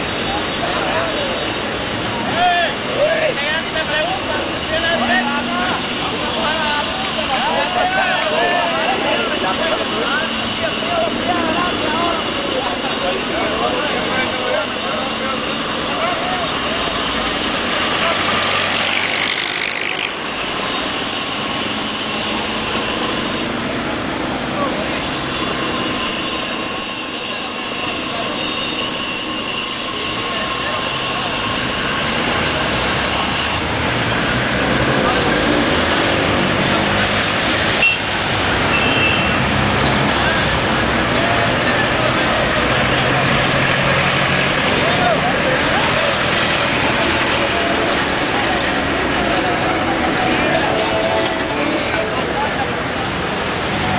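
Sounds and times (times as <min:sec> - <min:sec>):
people talking: 0:00.0 - 0:20.8, 0:22.8 - 0:53.9
car and bus engines passing: 0:00.0 - 0:53.9.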